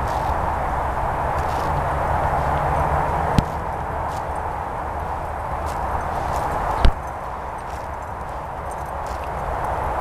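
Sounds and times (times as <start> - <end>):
horse hoofbeats on grass: 1.4 - 10.0
sharp thump: 3.4 - 3.6.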